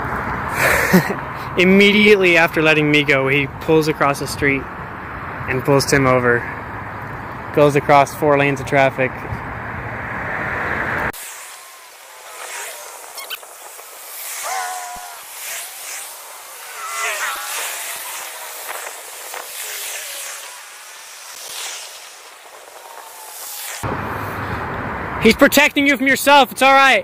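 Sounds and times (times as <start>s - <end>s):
steady hiss: 11.2s - 23.9s.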